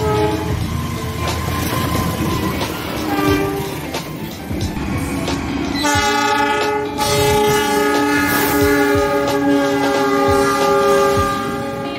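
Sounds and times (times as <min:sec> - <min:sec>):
locomotive horn chord: 0:00.0 - 0:00.7, 0:03.0 - 0:04.0, 0:05.8 - 0:11.9
train wheels clattering on rails: 0:00.0 - 0:11.9.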